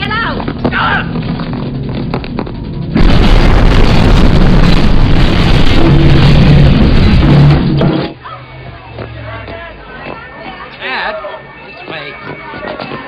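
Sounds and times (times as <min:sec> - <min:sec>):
film score music: 0:00.0 - 0:03.7
bomb explosion blast: 0:02.8 - 0:08.2
falling debris: 0:02.9 - 0:08.2.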